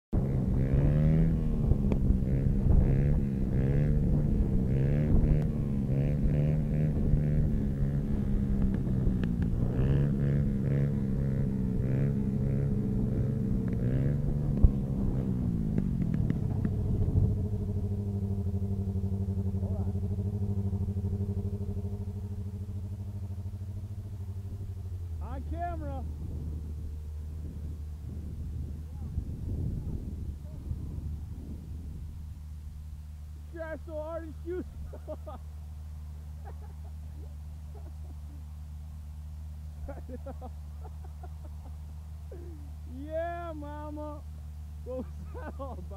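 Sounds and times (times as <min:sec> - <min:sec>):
small motorcycle engine revving: 0:00.2 - 0:45.9.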